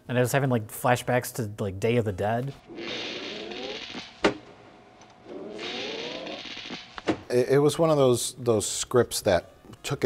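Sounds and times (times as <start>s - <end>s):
hissing rasp with rising tone: 2.6s - 4.2s, 5.2s - 6.9s.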